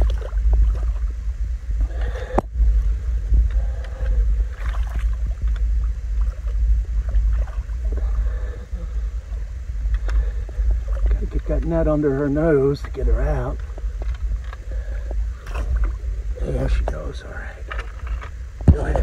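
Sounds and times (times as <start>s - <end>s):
light water splashes: 0.0s - 2.9s, 3.5s - 11.8s, 15.3s - 17.0s
low rumble on microphone: 0.0s - 19.0s.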